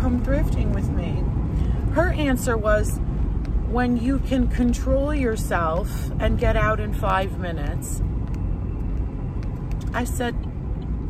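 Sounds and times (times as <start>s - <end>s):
woman's voice: 0.0s - 1.3s, 1.9s - 3.0s, 3.7s - 8.0s, 9.9s - 10.4s
car driving rumble inside cabin: 0.0s - 11.0s.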